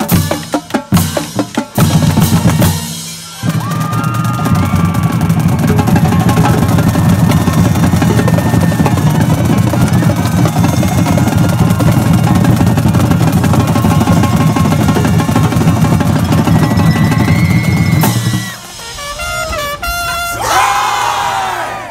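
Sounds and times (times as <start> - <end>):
snare and tenor drums: 0.0 - 20.6
marching band playing: 0.0 - 21.6
people shouting: 3.2 - 18.8, 19.8 - 21.9.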